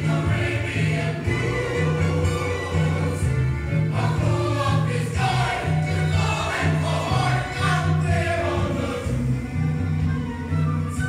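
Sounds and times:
choir singing: 0.0 - 9.8
low pulsing bass line: 0.0 - 11.0.

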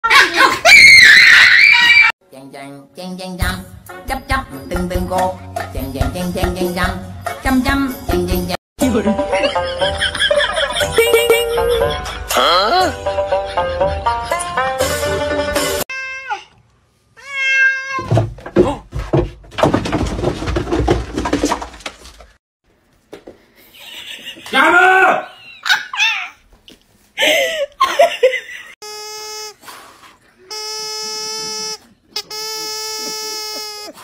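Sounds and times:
cat meowing: 15.9 - 16.5, 17.2 - 18.1
laughing cries: 23.8 - 26.4, 32.8 - 34.0
person screaming: 24.5 - 25.4.

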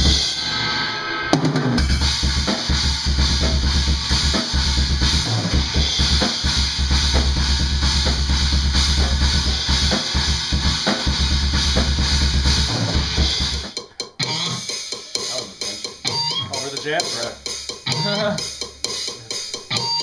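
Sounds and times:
rock drum kit: 0.0 - 20.0.

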